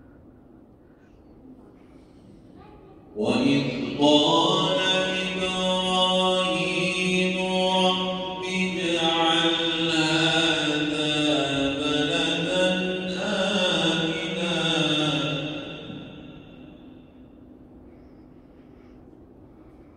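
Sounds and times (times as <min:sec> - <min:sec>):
man chanting melodically: 0:03.2 - 0:16.9.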